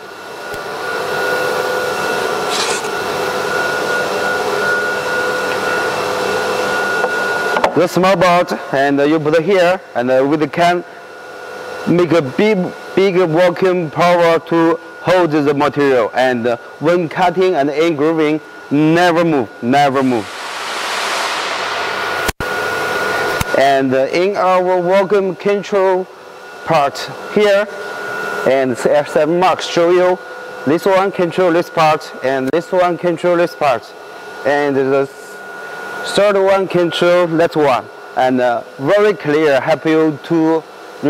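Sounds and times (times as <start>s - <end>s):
vacuum pump rushing air: 0.5s - 7.8s, 19.6s - 23.8s
faint high whine: 19.3s - 24.4s.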